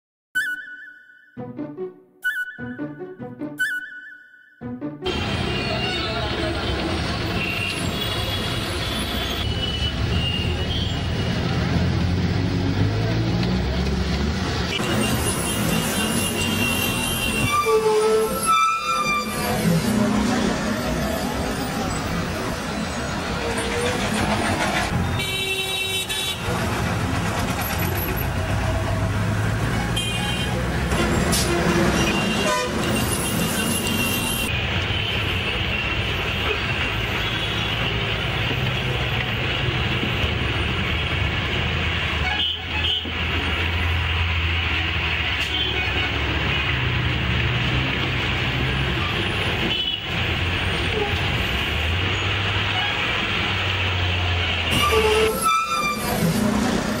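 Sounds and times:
street traffic: 0:05.0 - 0:57.0
vehicle horns tooting: 0:14.7 - 0:19.6, 0:25.0 - 0:26.5, 0:29.8 - 0:36.0, 0:42.2 - 0:43.1, 0:54.7 - 0:56.2
bus engine running: 0:25.8 - 0:34.0, 0:35.7 - 0:57.0.

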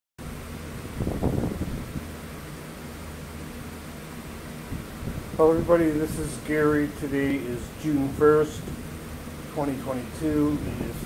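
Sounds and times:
room hum and hiss: 0:00.2 - 0:11.0.

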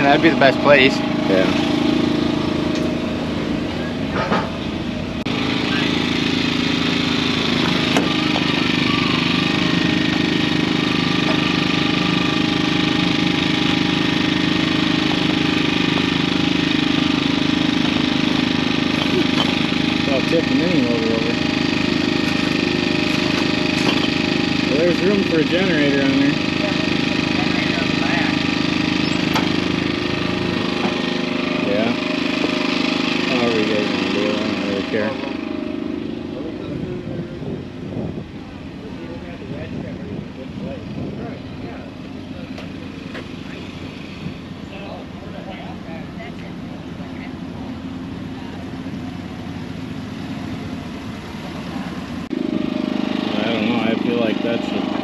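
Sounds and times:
machine engine running steadily: 0:00.0 - 0:55.0.

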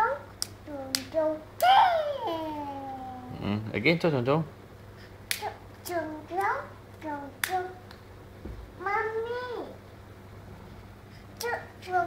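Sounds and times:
toddler's voice: 0:00.0 - 0:03.4, 0:08.8 - 0:09.8.

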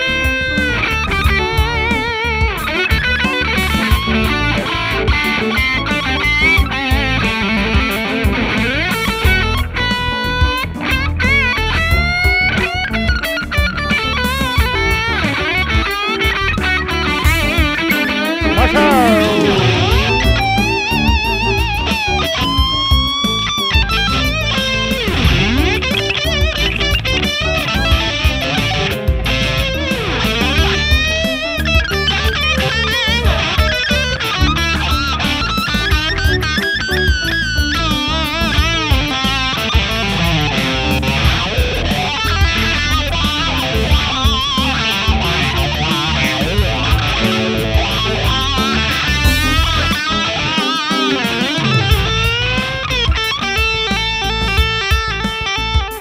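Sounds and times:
backing track: 0:00.0 - 0:56.0
electric guitar lead solo: 0:00.0 - 0:56.0.

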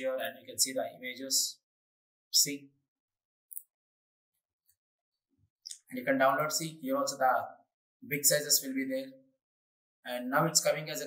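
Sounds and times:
man talking: 0:00.0 - 0:01.6, 0:02.4 - 0:02.6, 0:05.7 - 0:09.2, 0:10.1 - 0:11.0.

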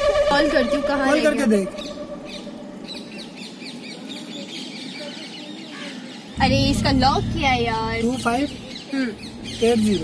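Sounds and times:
faint steady background noise: 0:00.0 - 0:10.0
small birds chirping: 0:01.0 - 0:10.0.

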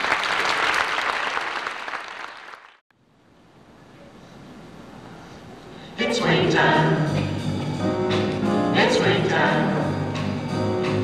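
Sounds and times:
audience applause: 0:00.0 - 0:02.8
faint room noise hiss: 0:02.9 - 0:10.1.

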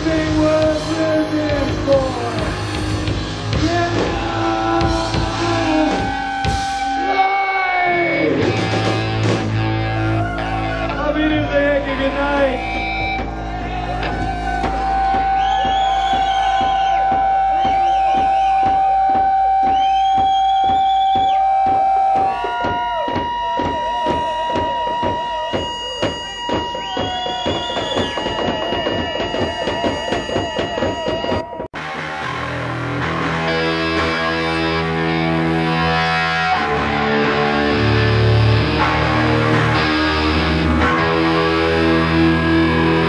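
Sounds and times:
distorted electric guitar droning: 0:00.0 - 0:43.0
noise-punk band playing live: 0:00.0 - 0:43.0.

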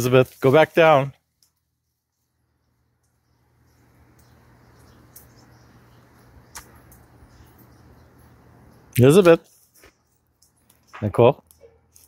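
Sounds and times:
person speaking: 0:00.0 - 0:01.2, 0:10.8 - 0:11.5
brief clicks: 0:06.5 - 0:07.1.

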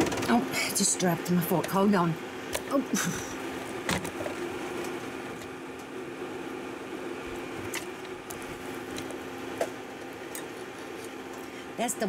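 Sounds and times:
kitchen appliance humming: 0:00.0 - 0:12.0.

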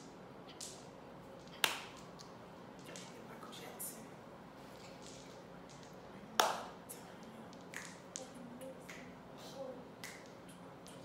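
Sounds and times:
sharp clap: 0:01.6 - 0:02.1.

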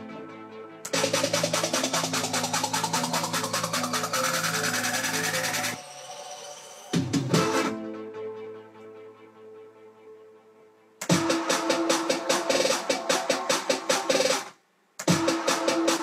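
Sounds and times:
sustained synth chords: 0:00.0 - 0:05.8
fast drum roll: 0:00.9 - 0:05.8.

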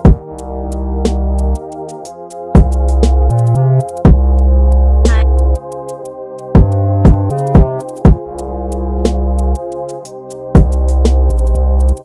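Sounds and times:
dark synth melody: 0:00.0 - 0:12.0
heavy bass note: 0:04.9 - 0:05.6.

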